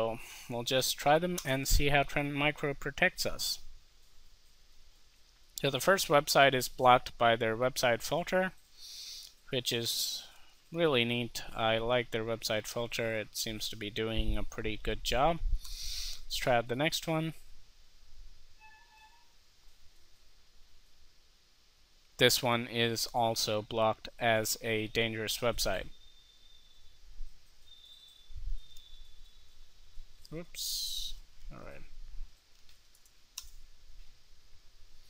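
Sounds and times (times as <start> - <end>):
background hiss: 0.0 - 35.0
faint low hum: 0.0 - 35.0
faint short pitched tone: 18.6 - 19.4.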